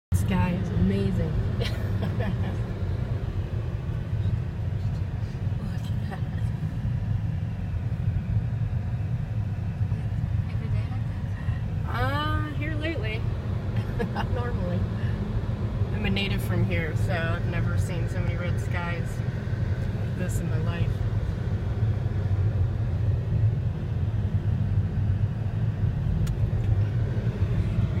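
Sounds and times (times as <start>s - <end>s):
car cabin road noise rumble: 0.1s - 28.0s.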